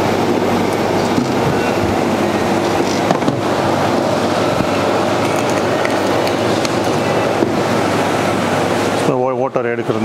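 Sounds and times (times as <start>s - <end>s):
loud rushing noise: 0.0s - 9.0s.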